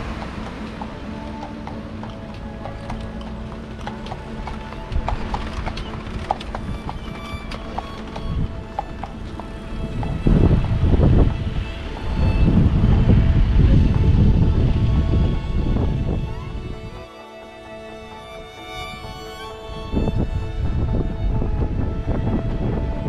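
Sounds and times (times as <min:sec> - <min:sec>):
background music: 0:00.0 - 0:23.0
horse hooves clip-clopping on pavement: 0:00.0 - 0:23.0
low rushing noise: 0:00.0 - 0:23.0.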